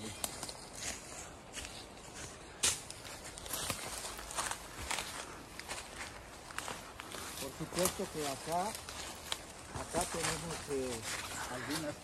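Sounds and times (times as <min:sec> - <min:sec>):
footsteps crunching on dry leaves: 0:00.0 - 0:12.0.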